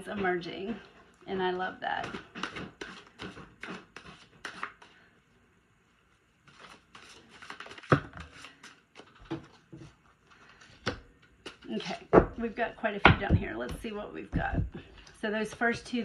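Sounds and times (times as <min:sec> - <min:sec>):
cards being shuffled: 0:06.5 - 0:09.6.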